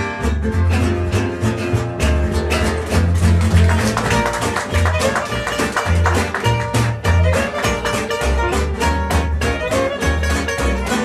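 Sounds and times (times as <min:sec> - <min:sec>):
acoustic guitars strumming: 0:00.0 - 0:11.0
plucked double bass: 0:00.0 - 0:11.0
violin bowing: 0:04.2 - 0:11.0.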